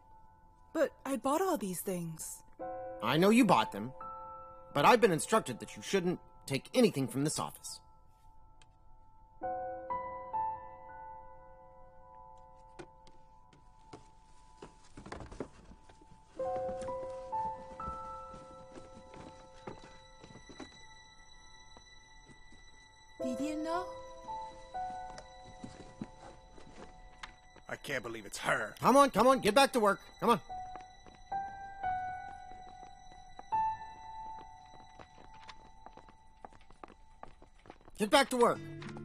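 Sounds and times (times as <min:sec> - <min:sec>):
soft piano notes: 0:02.4 - 0:37.2
footsteps on a hard floor: 0:12.6 - 0:21.1, 0:23.5 - 0:27.7, 0:30.0 - 0:38.0.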